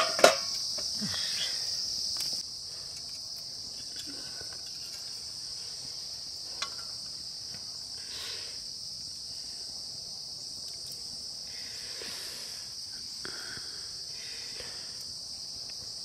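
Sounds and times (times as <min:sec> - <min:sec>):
insects chirring: 0:00.0 - 0:16.0.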